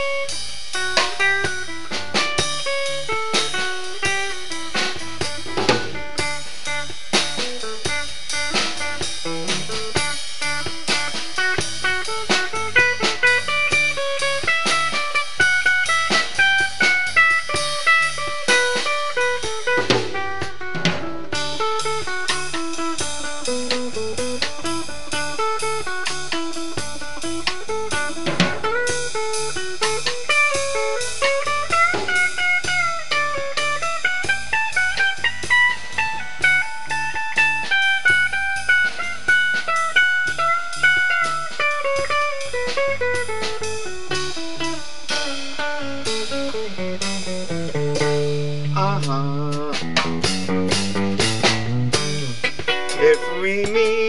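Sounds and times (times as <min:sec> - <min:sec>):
drum kit beat: 0:00.0 - 0:54.0
electric guitars: 0:00.0 - 0:54.0
lead guitar bending notes: 0:00.0 - 0:54.0.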